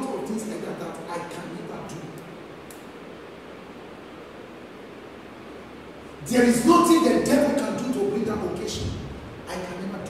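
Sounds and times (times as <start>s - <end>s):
room tone hiss: 0.0s - 10.0s
faint click: 2.2s - 2.9s.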